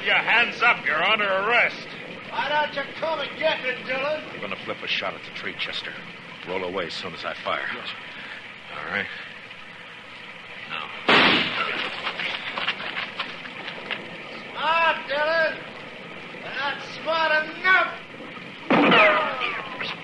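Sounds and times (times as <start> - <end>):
rain hiss: 0.0 - 20.0
ricochet whine: 11.0 - 14.1, 18.2 - 20.0
gunshot with echo: 11.1 - 11.8.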